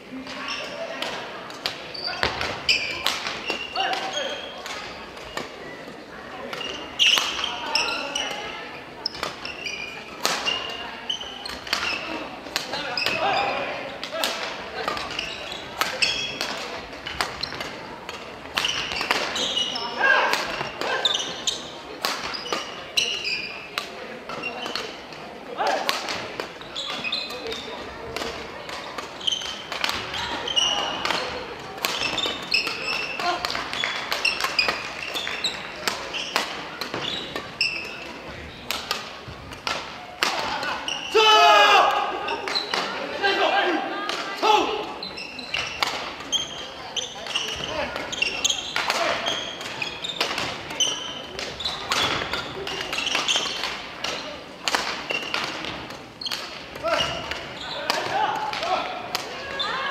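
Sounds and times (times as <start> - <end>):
background chatter and calls: 0.0 - 59.9
racket hitting shuttlecock: 1.0 - 5.6, 10.2 - 10.7, 14.0 - 19.5, 20.3 - 21.4, 22.0 - 22.8, 25.7 - 37.9, 47.2 - 59.4.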